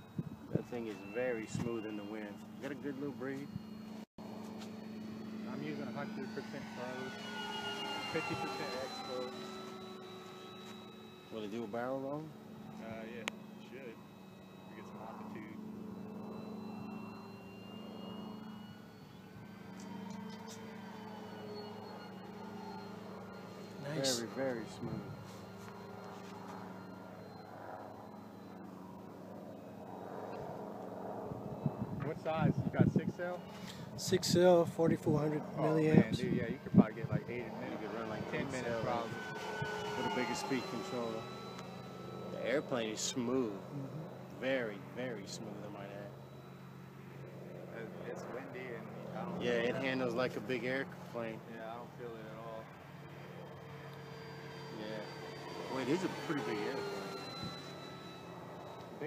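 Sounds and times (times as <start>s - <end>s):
model plane motor drone: 0.0s - 59.0s
man speaking: 0.5s - 3.5s, 23.8s - 25.1s, 34.0s - 39.2s, 47.8s - 50.7s.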